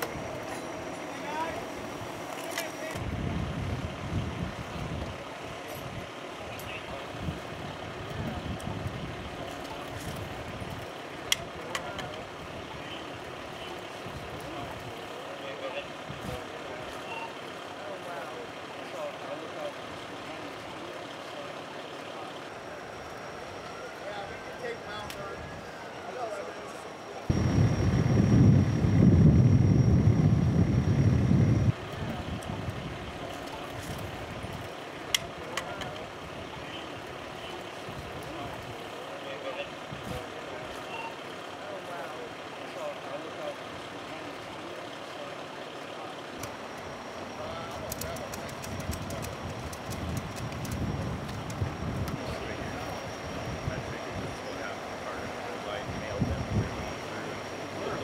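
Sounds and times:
street noise: 0:00.0 - 0:58.0
vehicle engines idling: 0:00.0 - 0:58.0.

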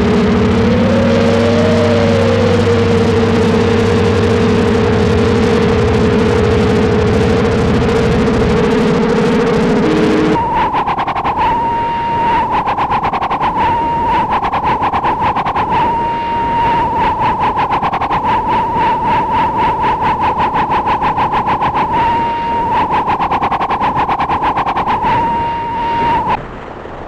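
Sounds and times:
electronic alarm beeping: 0:00.0 - 0:26.4.

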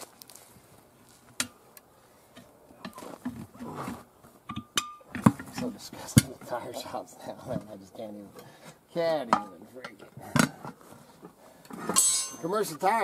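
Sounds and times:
tire irons clinking on wheel rim: 0:04.4 - 0:06.4, 0:11.9 - 0:12.7.

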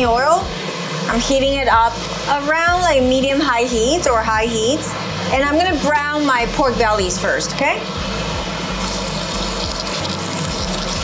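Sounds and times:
meat sizzling in oil: 0:08.7 - 0:11.0.

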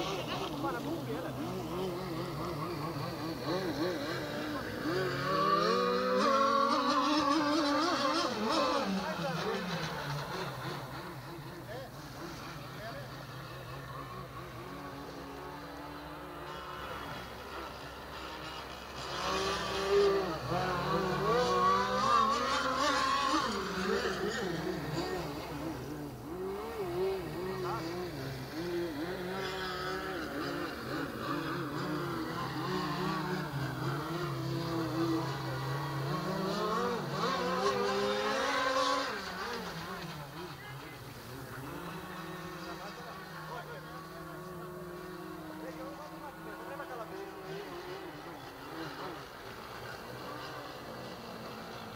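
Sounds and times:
model boat motor whining: 0:00.0 - 0:51.9.

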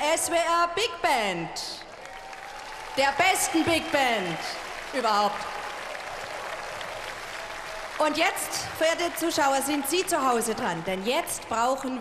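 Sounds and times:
audience applauding: 0:01.8 - 0:10.9.

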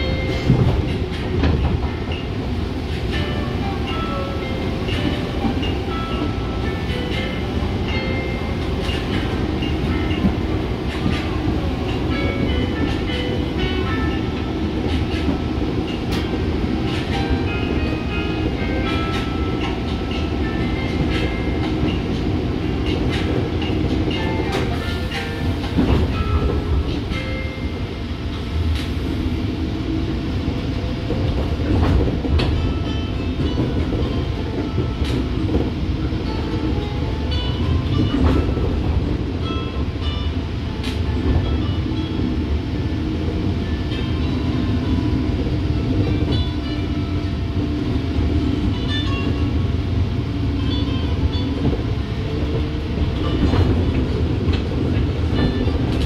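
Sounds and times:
train rumble from inside: 0:00.0 - 0:56.0.

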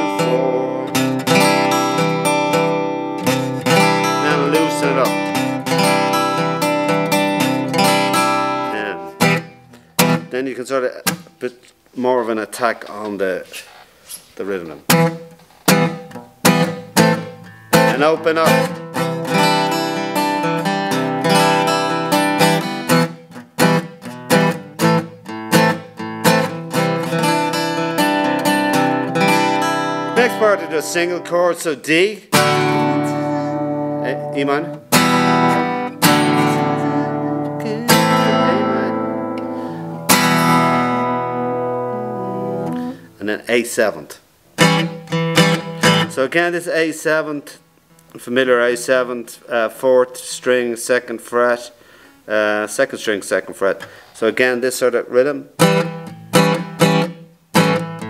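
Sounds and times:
acoustic guitar strummed: 0:00.0 - 0:10.4, 0:11.0 - 0:11.5, 0:14.9 - 0:43.2, 0:44.5 - 0:46.2, 0:55.5 - 0:58.0.

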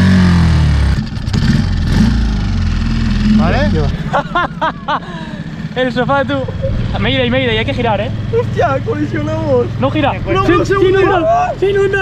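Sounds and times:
outboard motor running: 0:02.4 - 0:12.0.

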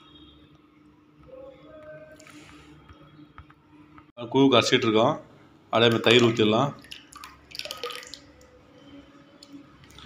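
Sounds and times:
liquid pouring and dripping: 0:05.8 - 0:08.6, 0:09.3 - 0:10.0.

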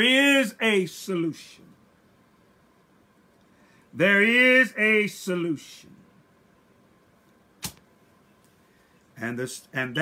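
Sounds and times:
short sharp click: 0:07.6 - 0:07.8.

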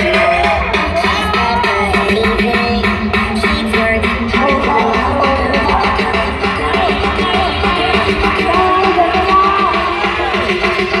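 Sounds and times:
loud music with heavy bass: 0:00.0 - 0:11.0.

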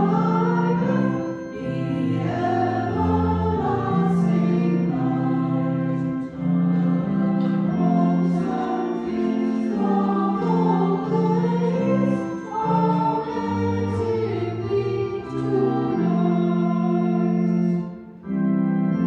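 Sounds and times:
choir singing a hymn: 0:00.0 - 0:18.0.

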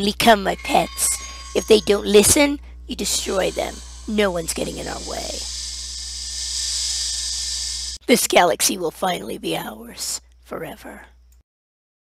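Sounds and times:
low steady drone: 0:00.0 - 0:08.0
hissing magic energy effect: 0:00.3 - 0:08.0.

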